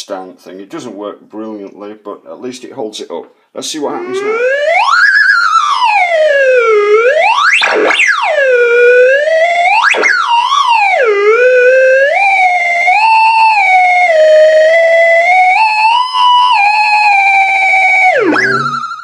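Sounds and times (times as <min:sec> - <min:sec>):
theremin tone swooping: 0:15.6 - 0:19.0.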